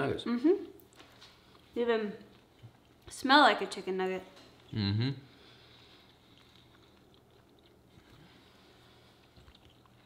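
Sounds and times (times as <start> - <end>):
faint chewing: 0.6 - 10.0.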